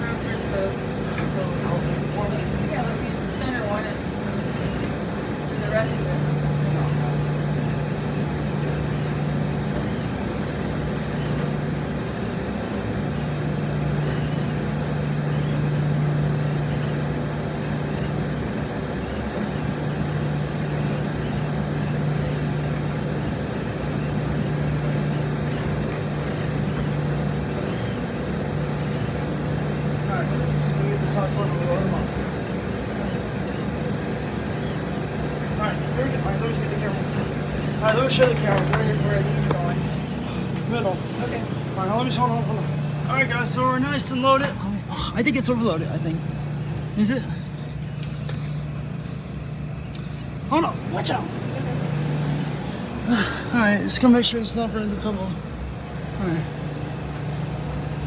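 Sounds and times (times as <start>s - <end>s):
laundromat machines humming: 0.0s - 58.0s.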